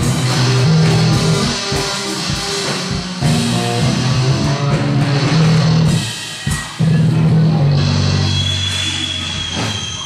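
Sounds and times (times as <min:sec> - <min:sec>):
rock band low chord ringing: 0:00.0 - 0:10.0.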